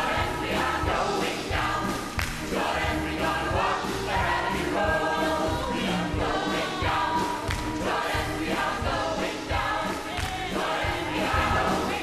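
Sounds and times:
big band with steady beat: 0.0 - 12.0
gospel choir singing: 0.0 - 12.0
lead singers: 0.0 - 12.0.

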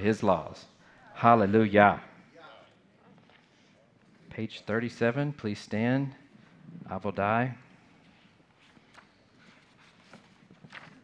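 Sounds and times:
people shuffling and rustling: 0.0 - 11.0
pages turning: 8.5 - 11.0.

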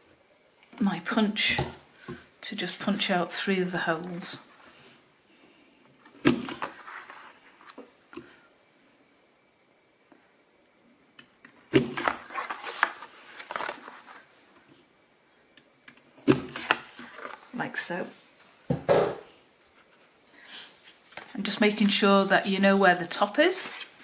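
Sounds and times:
card rustling: 12.0 - 14.3.

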